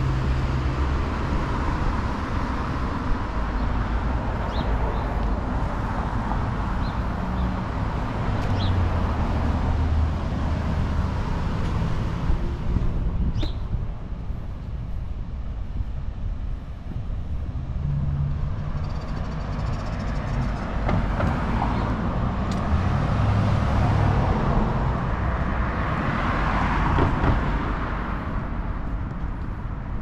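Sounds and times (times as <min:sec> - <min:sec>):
car driving past: 0:17.8 - 0:28.3.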